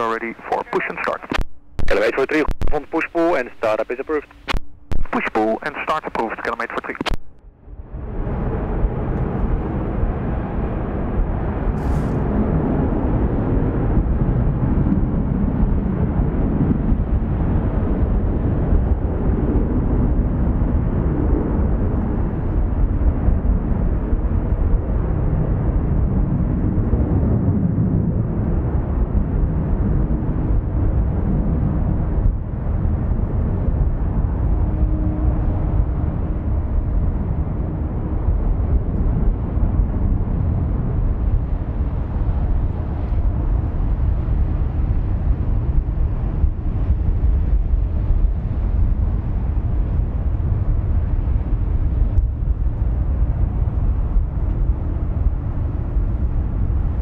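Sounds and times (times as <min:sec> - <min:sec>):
faint steady hum: 0:00.0 - 0:07.6
jet engine rumble: 0:00.0 - 0:57.0.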